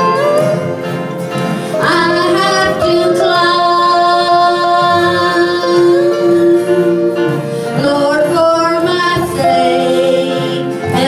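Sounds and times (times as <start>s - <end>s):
country band: 0.0s - 11.0s
woman singing gospel song: 1.8s - 11.0s.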